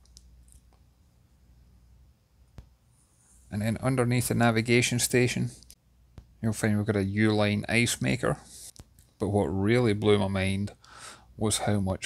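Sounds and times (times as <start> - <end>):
faint clicks: 0.0 - 0.8.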